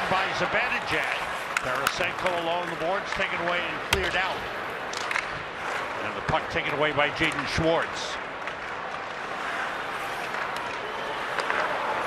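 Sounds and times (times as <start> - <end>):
stick and puck clicks: 4.9 - 5.4, 6.6 - 9.1, 10.2 - 11.8
skates scraping on ice: 8.6 - 12.0.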